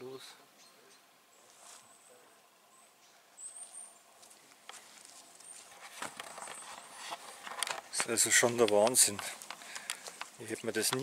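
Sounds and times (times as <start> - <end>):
faint forest ambience: 0.0 - 11.0
camera handling rustling and knocks: 5.7 - 11.0.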